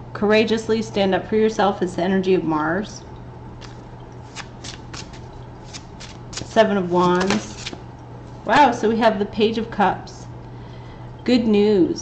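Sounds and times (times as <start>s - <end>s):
cards being shuffled: 3.6s - 7.8s.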